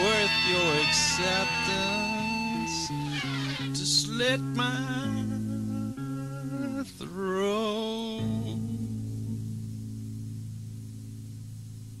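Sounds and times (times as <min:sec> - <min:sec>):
low chord ringing: 0:00.0 - 0:03.8.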